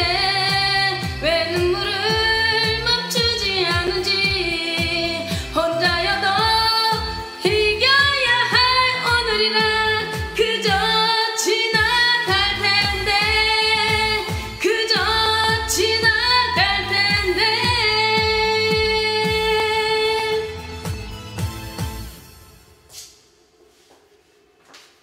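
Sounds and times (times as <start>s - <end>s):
person singing: 0.0s - 20.6s
dance pop backing track: 0.0s - 23.2s.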